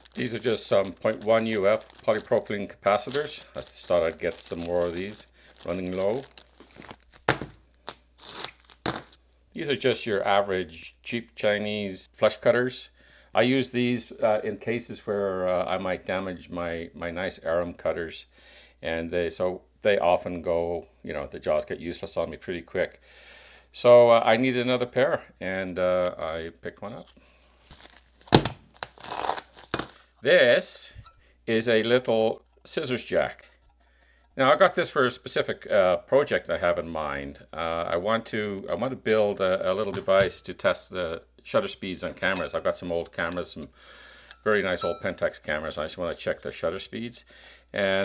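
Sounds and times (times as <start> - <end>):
plastic crinkling: 0.0 - 9.2, 27.6 - 30.2, 47.8 - 48.0
packet knocking on mat: 7.3 - 7.6.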